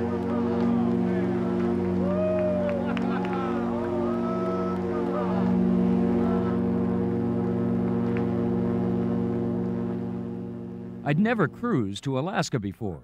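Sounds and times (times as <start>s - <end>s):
ship's horn blast: 0.0s - 12.0s.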